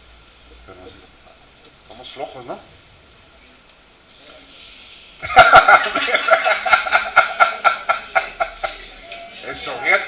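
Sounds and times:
man laughing heartily: 5.2s - 8.9s.

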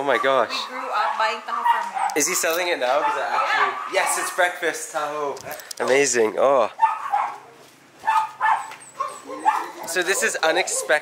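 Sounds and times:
dog barking: 0.1s - 4.4s, 6.8s - 11.0s.

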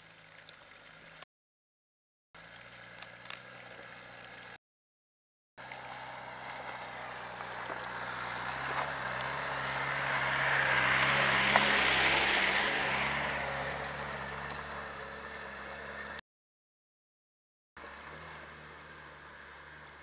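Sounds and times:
car driving past on wet track: 5.6s - 16.2s, 17.8s - 20.0s.

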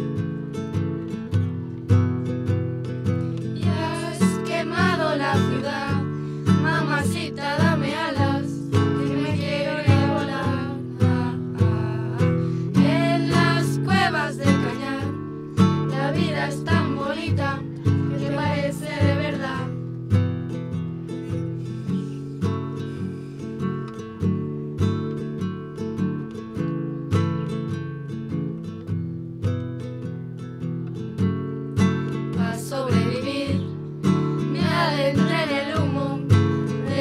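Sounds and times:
acoustic guitars strumming: 0.0s - 37.0s
girls singing: 3.6s - 19.8s, 32.4s - 37.0s.

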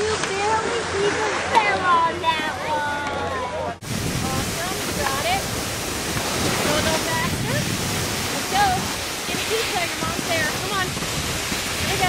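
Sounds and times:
steady rushing noise: 3.8s - 12.0s.

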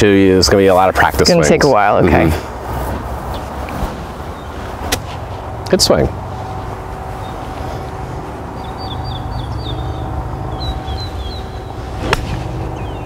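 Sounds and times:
faint steady hum: 0.0s - 13.0s
low steady rumble: 0.0s - 13.0s
small bird chirping: 8.5s - 11.8s, 12.8s - 13.0s.

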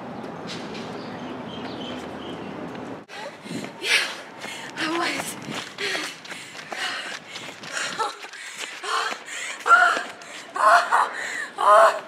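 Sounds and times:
jogging footsteps on rubber track: 3.1s - 10.5s
hard tired breathing: 3.1s - 11.6s.

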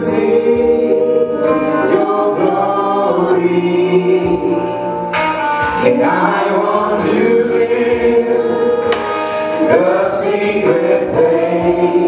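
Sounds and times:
gospel singing through pa: 0.0s - 12.0s.

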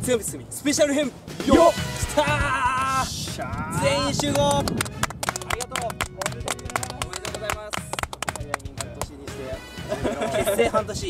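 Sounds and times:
background music: 0.0s - 11.0s
group of people clapping: 4.0s - 9.2s.

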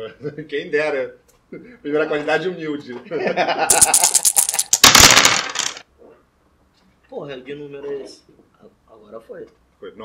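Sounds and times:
die clattering in wooden box: 3.7s - 5.8s.

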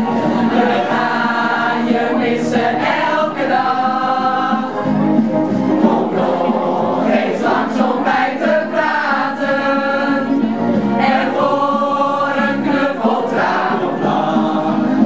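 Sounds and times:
group of adults singing: 0.0s - 15.0s.

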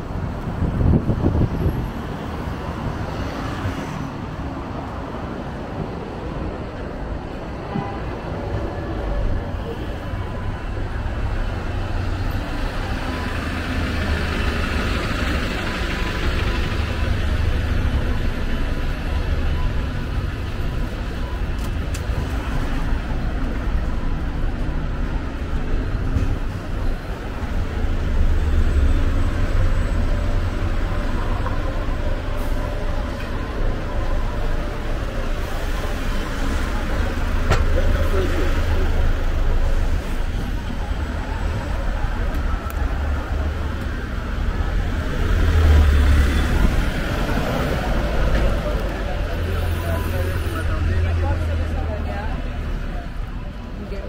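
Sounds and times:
diesel buses engine rumble: 0.0s - 54.0s
passers-by talking: 0.0s - 54.0s
street traffic: 0.0s - 54.0s.

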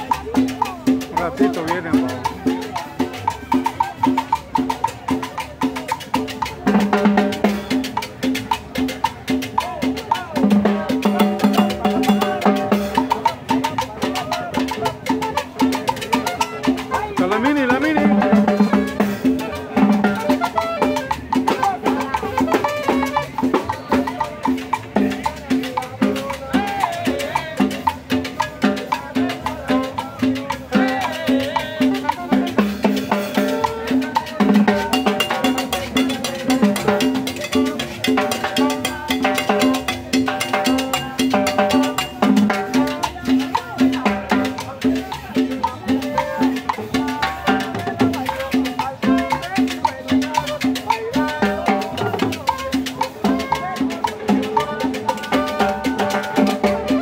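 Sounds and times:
congas and timbales rhythm: 0.0s - 57.0s
salsa band playing: 0.0s - 57.0s.

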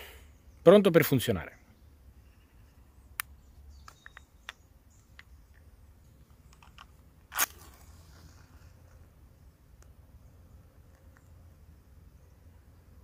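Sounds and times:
handling clicks and taps: 3.2s - 7.0s
match struck on box: 6.6s - 8.7s.

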